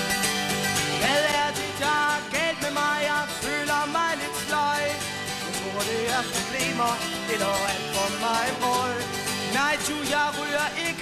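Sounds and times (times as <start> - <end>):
strummed acoustic guitars: 0.0 - 11.0
person singing: 1.0 - 11.0.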